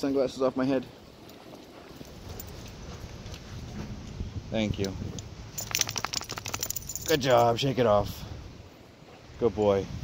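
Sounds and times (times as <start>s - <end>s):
footsteps on a dirt trail: 1.0s - 4.1s.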